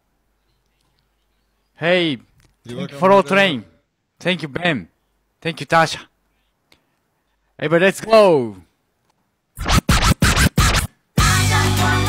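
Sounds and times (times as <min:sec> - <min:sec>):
dj scratching: 0:09.6 - 0:11.0.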